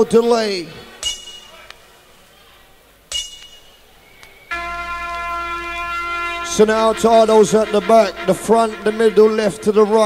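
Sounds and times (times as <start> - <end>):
long held synth note with deep bass: 4.5 - 10.0.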